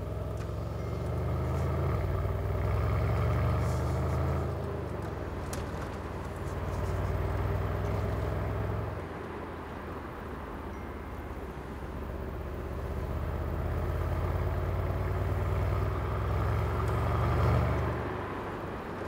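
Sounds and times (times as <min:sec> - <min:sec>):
low engine drone in car cabin: 0:00.0 - 0:19.0.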